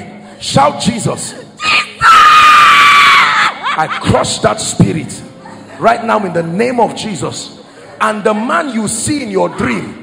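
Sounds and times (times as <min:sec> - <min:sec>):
woman screaming: 0:01.6 - 0:03.8.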